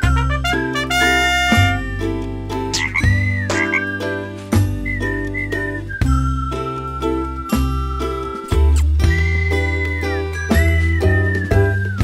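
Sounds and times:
playful cartoon music: 0:00.0 - 0:12.0
cartoon frog croaking: 0:02.8 - 0:04.0.

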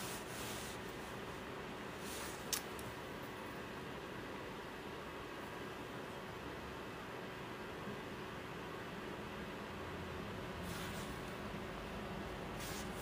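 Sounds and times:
faint steady hum: 0:00.0 - 0:13.0
room tone hiss: 0:00.0 - 0:13.0.

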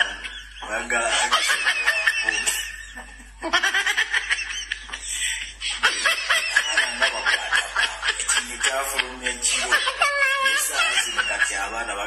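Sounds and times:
man laughing: 0:00.0 - 0:11.9.

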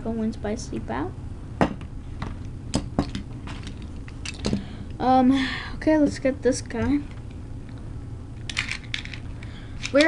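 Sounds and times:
metal spinning tops clicking: 0:08.5 - 0:10.0.

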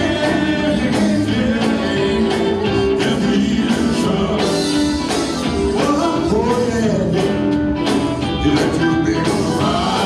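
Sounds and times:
bass guitar: 0:00.0 - 0:10.0
drums: 0:00.0 - 0:10.0
electric guitar: 0:00.0 - 0:10.0
keyboard: 0:00.0 - 0:10.0.

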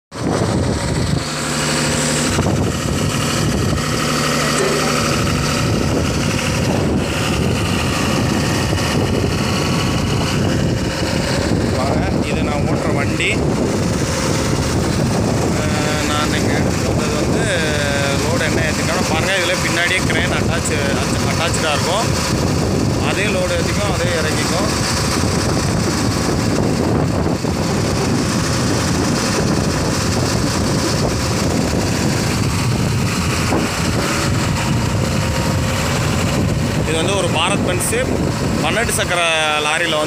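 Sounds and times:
diesel truck engine running: 0:00.1 - 0:40.0
indistinct voices talking: 0:00.4 - 0:25.0.

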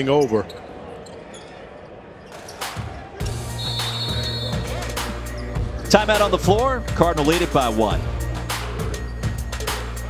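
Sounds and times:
court noise: 0:00.0 - 0:10.0
arena music with bass line: 0:03.2 - 0:10.0
referee whistle blast: 0:03.5 - 0:04.7.

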